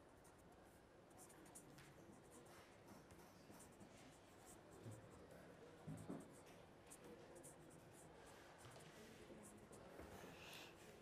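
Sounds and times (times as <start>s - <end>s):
pen scratching on paper: 1.1s - 5.2s.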